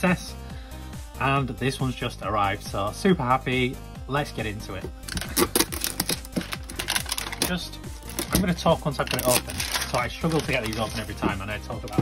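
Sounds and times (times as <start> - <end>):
plastic shrink-wrap crinkling: 5.1 - 12.0.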